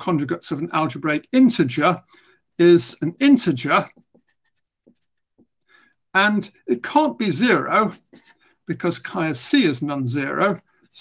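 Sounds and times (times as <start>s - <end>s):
marker writing on paper: 3.4s - 5.6s, 7.6s - 8.5s.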